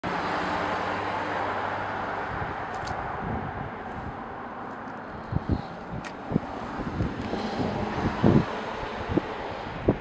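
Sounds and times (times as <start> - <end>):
vehicle engine hum: 0.0 - 10.0.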